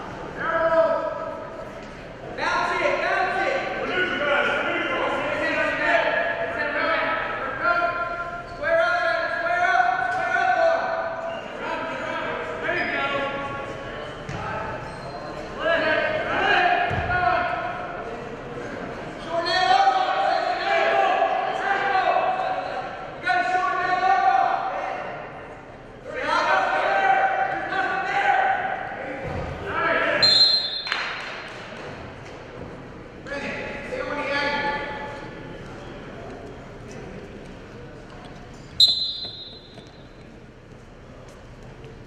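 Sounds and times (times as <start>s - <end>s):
people shouting in echoing gym: 14.4s - 31.4s.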